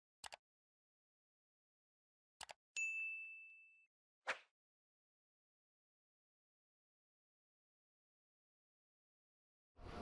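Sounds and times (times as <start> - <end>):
bright bell ding: 2.8 - 3.9.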